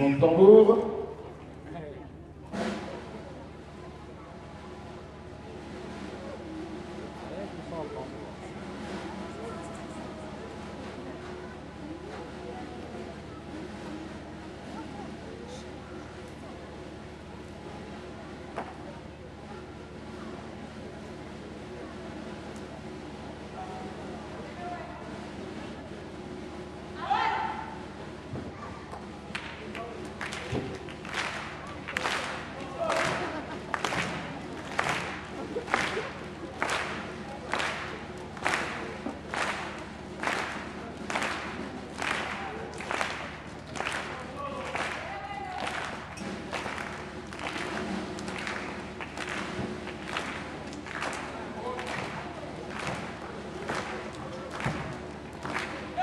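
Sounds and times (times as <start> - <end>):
faint voices: 0.0 - 56.0
steady murmur: 0.0 - 56.0
person shouting: 27.0 - 27.6
rhythmic sharp hits: 29.3 - 56.0.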